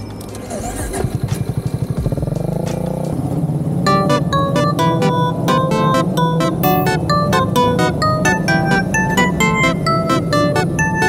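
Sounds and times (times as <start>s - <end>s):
motorcycle engine pulling away: 0.4s - 3.8s
music: 3.9s - 11.0s.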